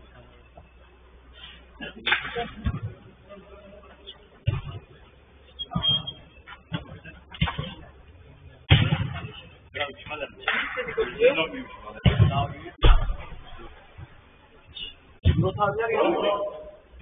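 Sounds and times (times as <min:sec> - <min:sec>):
football being kicked: 0:08.7 - 0:09.4, 0:12.0 - 0:13.3.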